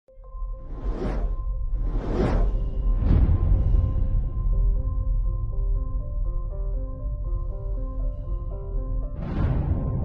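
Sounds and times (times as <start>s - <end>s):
cinematic whoosh: 0.6s - 4.5s
deep rumble: 0.6s - 10.0s.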